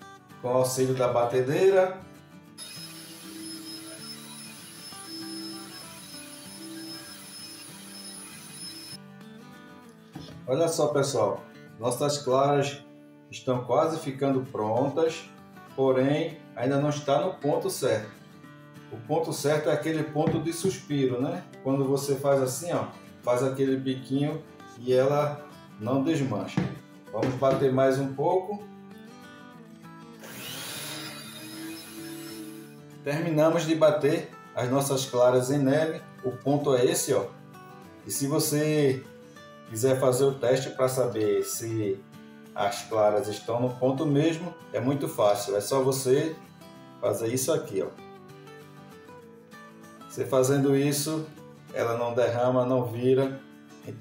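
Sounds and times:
soft background music: 0.0s - 54.0s
electric hand mixer whining: 2.6s - 9.0s, 30.2s - 32.9s.

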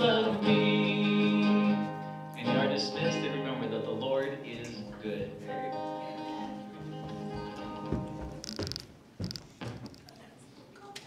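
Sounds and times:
acoustic guitar chords: 0.0s - 8.7s.

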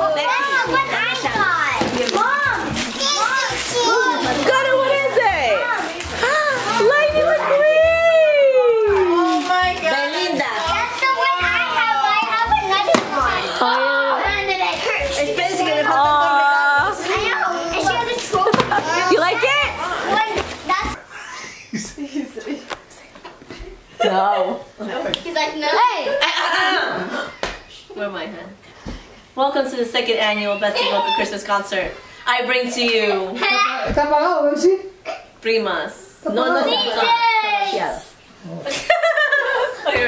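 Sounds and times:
children talking excitedly: 0.0s - 21.1s, 24.1s - 27.4s, 30.0s - 35.6s, 36.2s - 38.2s
children squealing and shouting: 36.7s - 37.8s.

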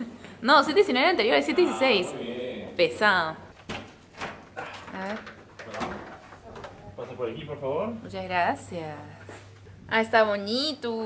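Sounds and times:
door being pushed open: 3.6s - 6.8s.

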